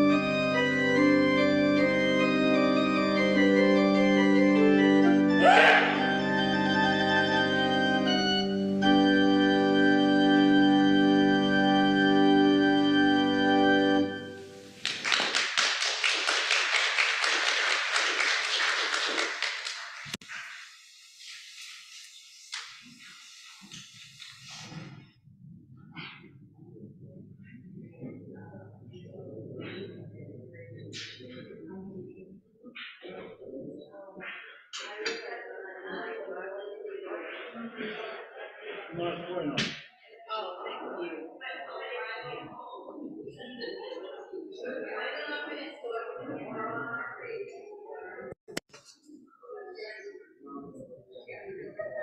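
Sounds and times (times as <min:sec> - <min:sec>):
church organ chords: 0:00.0 - 0:14.8
indistinct chatter of people: 0:00.0 - 0:14.8, 0:25.9 - 0:52.0
congregation applauding: 0:05.4 - 0:06.4, 0:14.6 - 0:20.2.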